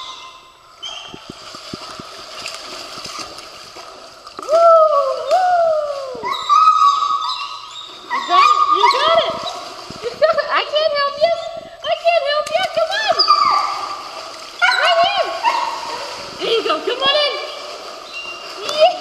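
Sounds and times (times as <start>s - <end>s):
water splashing: 0.9s - 19.0s
dog whining: 6.2s - 9.6s, 13.1s - 13.8s.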